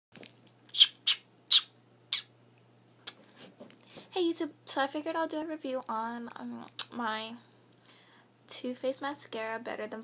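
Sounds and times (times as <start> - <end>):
kissing smacks: 0.7 - 2.3.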